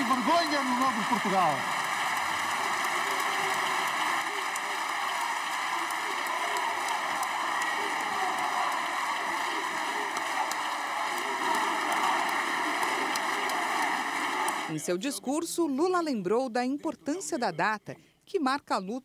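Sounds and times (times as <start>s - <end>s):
crowd applauding: 0.0s - 14.8s.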